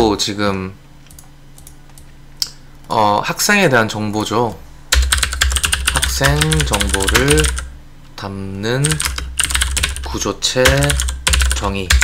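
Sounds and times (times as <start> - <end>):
low steady hum: 0.0 - 12.0
keyboard and mouse clicks: 1.0 - 3.0, 8.9 - 12.0.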